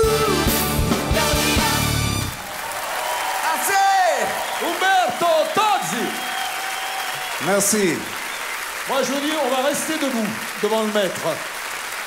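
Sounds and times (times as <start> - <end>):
pop band with brass section: 0.0 - 9.8
audience applauding and cheering: 0.0 - 12.0.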